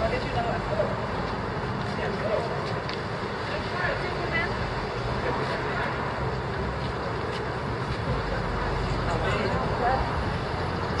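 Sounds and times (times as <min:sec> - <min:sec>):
passing traffic rumble: 0:00.0 - 0:11.0
people chattering: 0:00.0 - 0:11.0.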